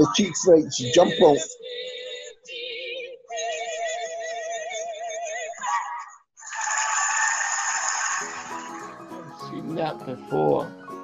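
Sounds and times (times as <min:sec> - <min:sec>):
audience applauding: 0:06.5 - 0:08.8.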